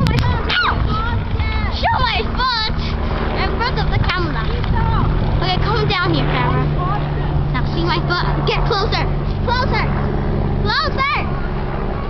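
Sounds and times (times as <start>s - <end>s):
children chattering and squealing: 0.0s - 12.0s
steady low hum: 0.0s - 12.0s.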